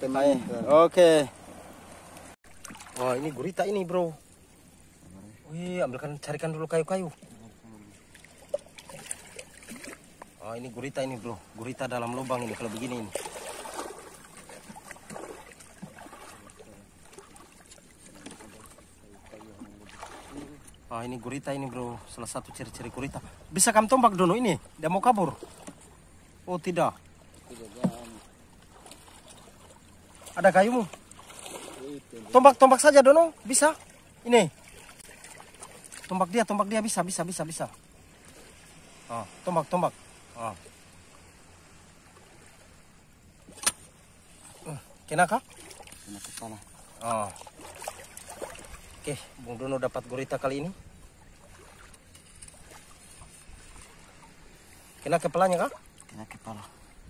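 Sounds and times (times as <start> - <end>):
water lapping: 0.0 - 57.0
spear striking reef: 43.4 - 44.0.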